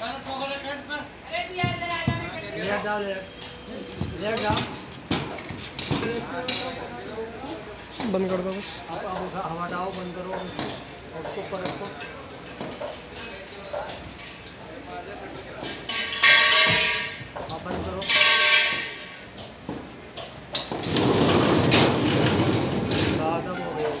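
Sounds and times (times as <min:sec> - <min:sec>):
loud metal scrapes: 0:18.0 - 0:19.3
metal frame sliding rumble: 0:20.7 - 0:24.0.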